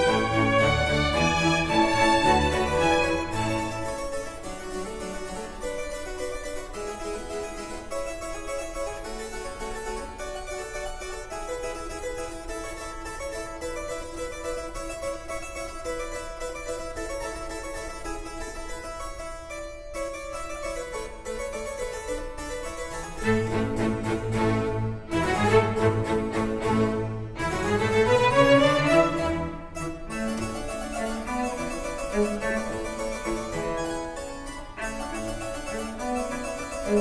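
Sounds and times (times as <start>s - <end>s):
string ensemble: 0.0s - 18.1s, 22.1s - 37.0s
harpsichord running notes: 0.0s - 37.0s.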